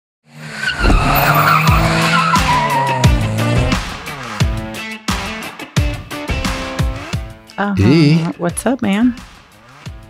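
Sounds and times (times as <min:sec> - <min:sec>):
tyres squealing: 0:00.6 - 0:03.5
music with heavy beat: 0:01.8 - 0:08.4.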